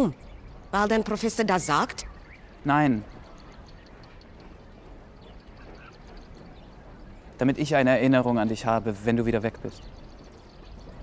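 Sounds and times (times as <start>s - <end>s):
low steady background noise: 0.0s - 11.0s
faint animal calls: 1.6s - 6.6s.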